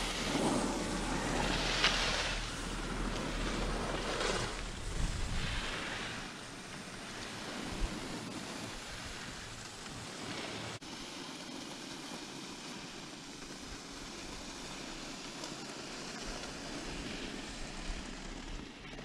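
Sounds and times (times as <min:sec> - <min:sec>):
wind rushing over microphone: 0:00.0 - 0:09.6.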